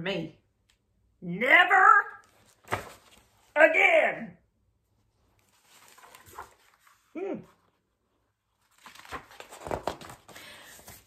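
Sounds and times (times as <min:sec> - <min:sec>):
paper pages rustling: 0:02.2 - 0:03.5, 0:05.2 - 0:07.8, 0:08.5 - 0:11.0.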